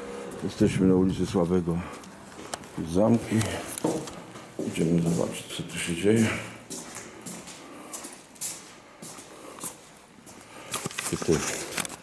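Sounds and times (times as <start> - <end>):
soft footsteps: 0.1 - 10.6.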